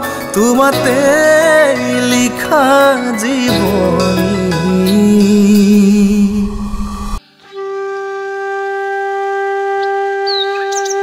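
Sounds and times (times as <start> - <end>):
long flute note: 3.6 - 11.0.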